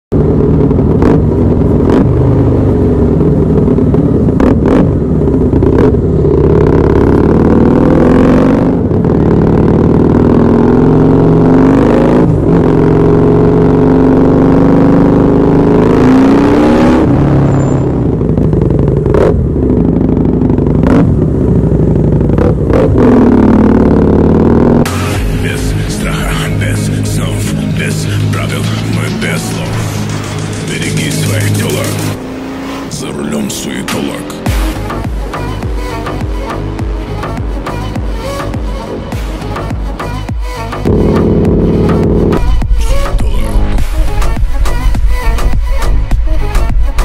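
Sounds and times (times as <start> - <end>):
motorcycle engine revving: 0.1 - 47.0.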